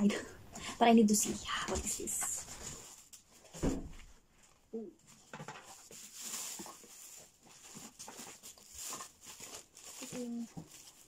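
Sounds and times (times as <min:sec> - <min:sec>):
plastic packaging rustling: 0:01.2 - 0:11.0.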